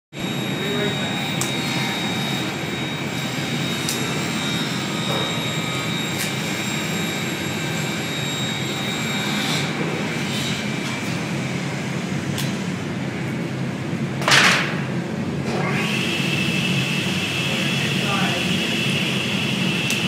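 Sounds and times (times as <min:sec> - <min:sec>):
loud machinery noise: 0:00.1 - 0:20.0.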